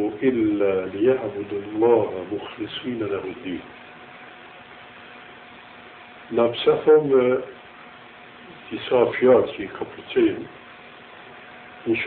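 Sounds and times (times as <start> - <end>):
cassette tape hiss: 0.0 - 12.0
faint steady hum: 0.0 - 12.0.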